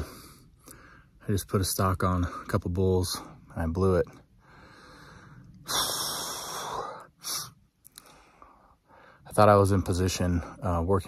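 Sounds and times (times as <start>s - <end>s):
man breathing heavily: 0.0s - 1.2s, 4.2s - 9.3s.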